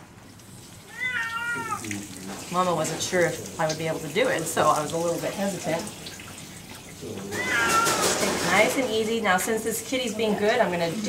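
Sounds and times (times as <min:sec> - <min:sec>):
cat meowing: 0:00.8 - 0:02.0, 0:07.1 - 0:08.4.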